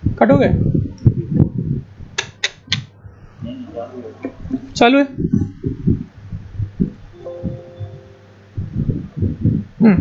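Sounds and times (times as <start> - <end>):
low muffled rumbling: 0.0 - 2.2, 2.9 - 10.0.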